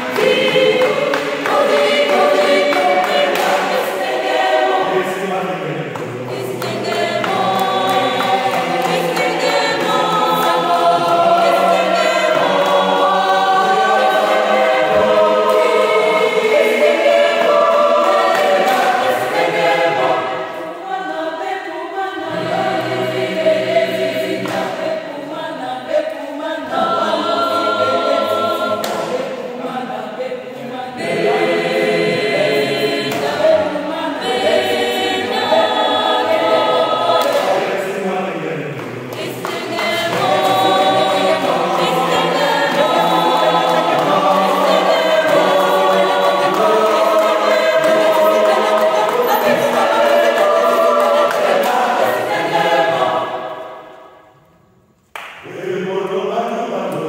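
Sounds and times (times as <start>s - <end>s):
mixed choir singing a cappella: 0.0s - 54.6s, 55.2s - 57.0s.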